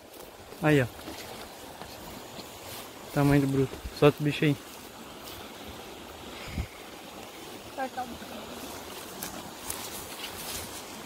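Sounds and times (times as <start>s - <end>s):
grass rustling underfoot: 0.0s - 11.0s
stream water flowing: 0.0s - 11.0s.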